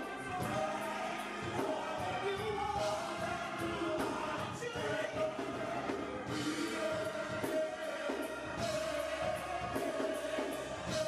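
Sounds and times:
musical accompaniment: 0.0 - 11.0
vocal group singing gospel: 0.0 - 11.0.

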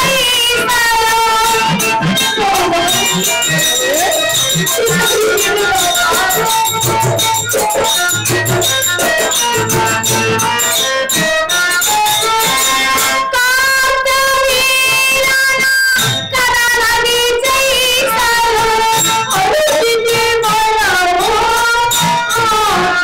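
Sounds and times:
instrumental accompaniment: 0.0 - 23.0
percussion strokes: 0.0 - 23.0.

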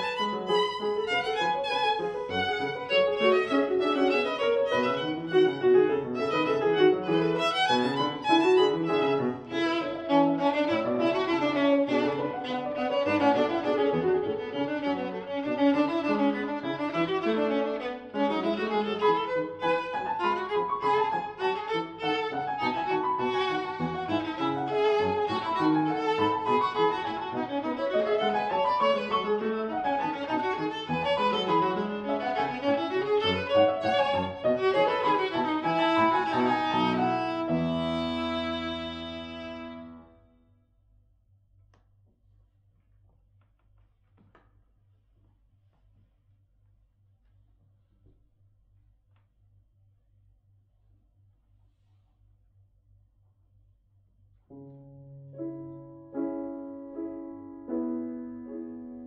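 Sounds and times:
violin: 0.0 - 40.3
grand piano: 0.0 - 40.5, 54.5 - 59.0.

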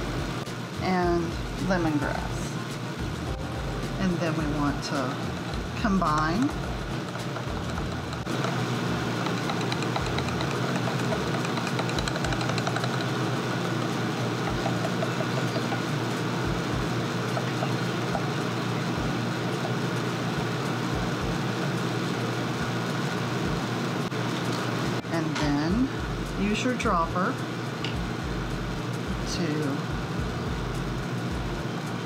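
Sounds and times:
background hum and hiss: 0.0 - 32.0
plastic whisk ticking in cup: 9.2 - 13.2, 14.5 - 15.9.

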